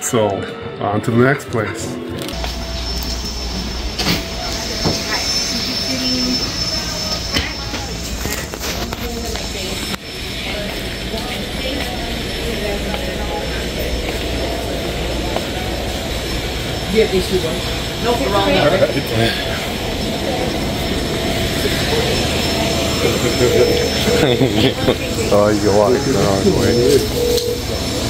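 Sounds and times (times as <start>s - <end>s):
steady low hum: 2.0s - 28.0s
faint background voices: 4.4s - 27.6s.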